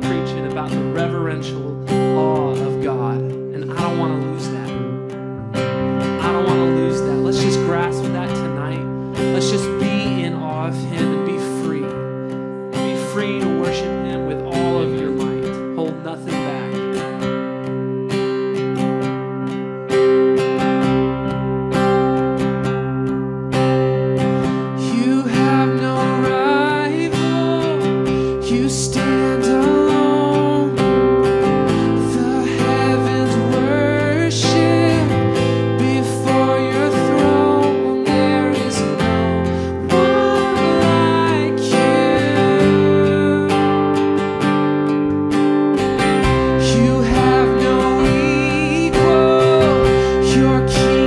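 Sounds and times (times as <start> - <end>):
acoustic guitar strummed: 0.0 - 51.0
held keyboard chords: 0.0 - 51.0.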